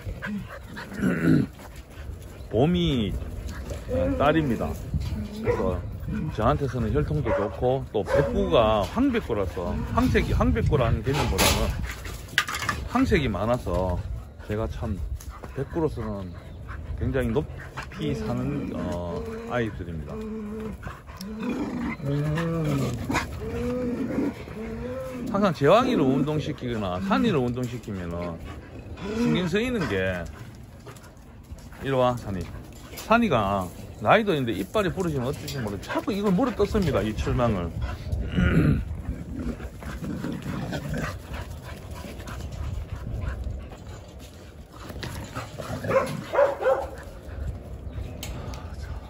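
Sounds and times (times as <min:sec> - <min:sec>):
dogs growling and grumbling: 0:00.0 - 0:49.0.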